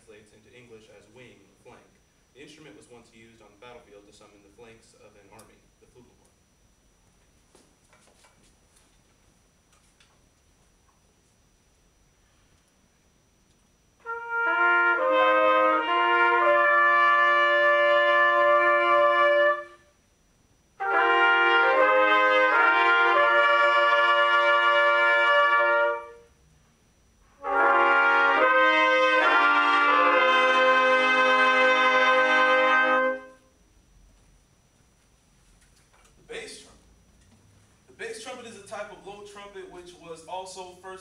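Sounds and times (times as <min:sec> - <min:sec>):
trumpet ensemble playing in harmony: 0:14.0 - 0:19.8, 0:20.8 - 0:26.3, 0:27.4 - 0:33.4.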